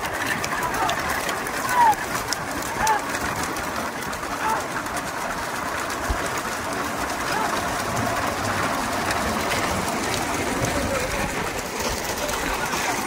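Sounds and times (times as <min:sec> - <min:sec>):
rumble of cart wheels and hooves: 0:00.0 - 0:13.0.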